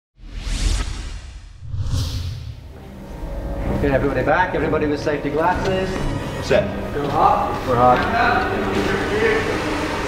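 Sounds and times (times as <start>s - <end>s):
whoosh sound effects: 0.2s - 2.8s
low music: 2.6s - 10.0s.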